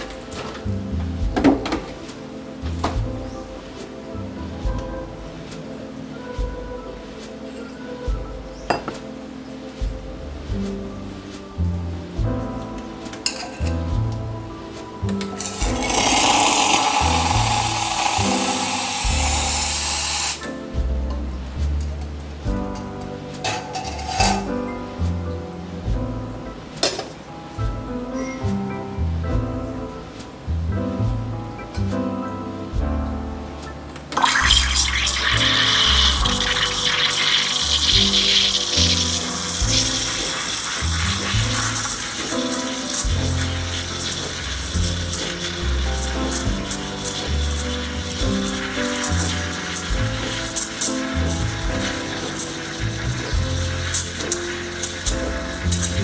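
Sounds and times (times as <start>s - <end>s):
background music with bass line: 0.0s - 56.0s
steam wand frothing milk: 15.4s - 20.4s, 34.2s - 56.0s.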